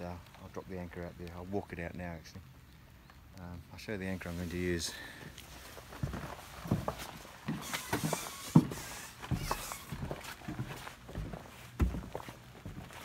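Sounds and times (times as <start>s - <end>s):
rustling: 3.8s - 13.0s
footsteps on boat deck: 4.8s - 13.0s.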